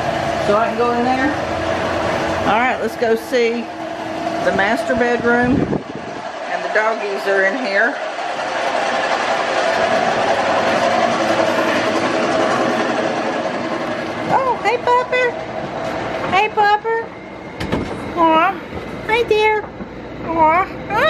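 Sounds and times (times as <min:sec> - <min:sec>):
steady rushing noise: 0:00.0 - 0:19.5.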